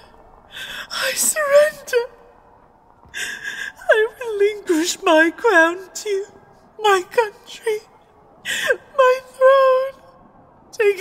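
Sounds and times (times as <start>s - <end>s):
woman making wordless sounds: 3.8s - 7.9s, 8.5s - 10.0s.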